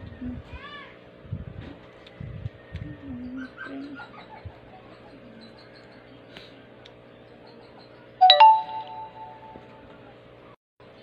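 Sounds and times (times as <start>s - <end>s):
loud two-note chime: 8.2s - 9.7s.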